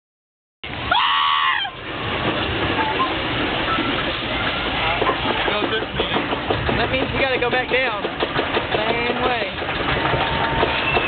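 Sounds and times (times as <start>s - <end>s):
steady noisy background: 0.6s - 11.0s.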